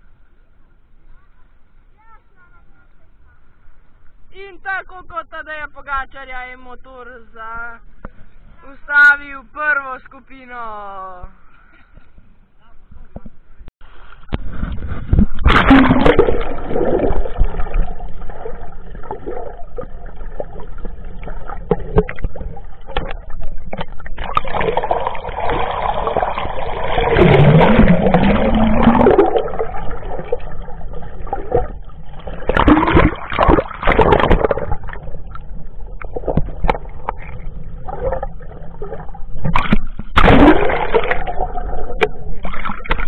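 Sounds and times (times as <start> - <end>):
underwater water sloshing: 11.4 - 43.0.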